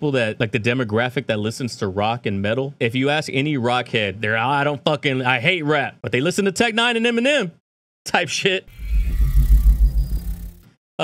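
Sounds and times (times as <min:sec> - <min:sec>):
pulsing deep bass rumble: 0:08.7 - 0:10.6.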